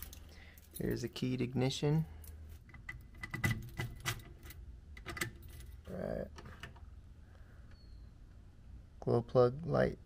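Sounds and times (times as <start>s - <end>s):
keys jangling: 0.0s - 1.2s, 5.2s - 5.9s.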